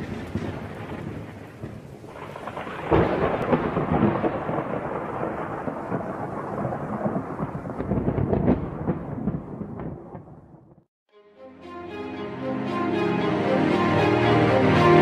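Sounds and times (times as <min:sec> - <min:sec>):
rain: 0:00.0 - 0:10.3
rolling thunder: 0:00.0 - 0:10.8
thunder clap: 0:00.0 - 0:10.8.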